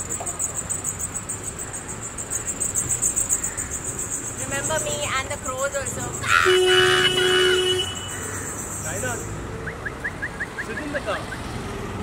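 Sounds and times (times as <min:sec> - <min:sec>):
insects chirring: 0:00.0 - 0:10.6
low street rumble: 0:00.0 - 0:12.0.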